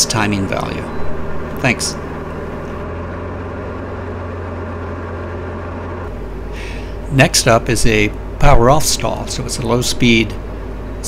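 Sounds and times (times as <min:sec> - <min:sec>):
aircraft engine and propeller droning: 0:00.0 - 0:11.0.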